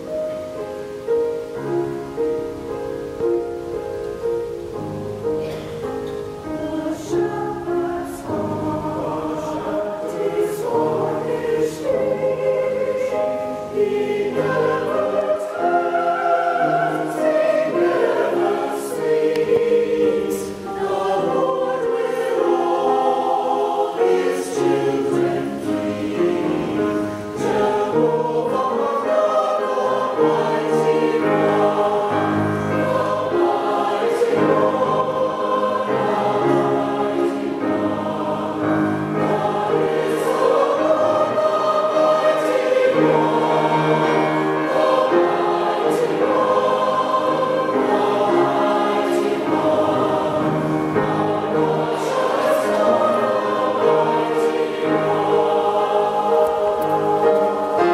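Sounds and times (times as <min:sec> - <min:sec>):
piano accompaniment: 0:00.0 - 0:57.9
mixed choir singing: 0:04.3 - 0:57.9.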